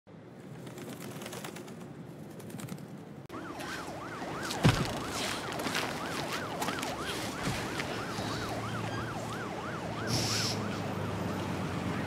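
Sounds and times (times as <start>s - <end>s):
ambulance siren wailing: 3.3s - 12.0s.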